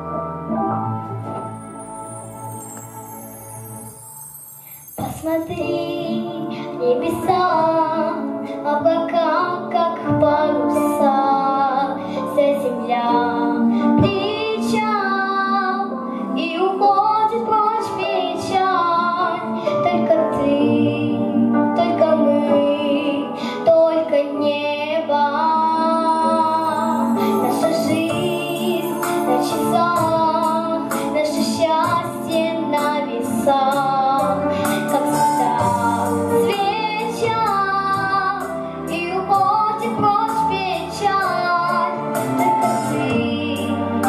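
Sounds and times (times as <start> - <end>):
instrumental accompaniment: 0.0 - 44.0
girl singing into microphone: 4.7 - 44.0.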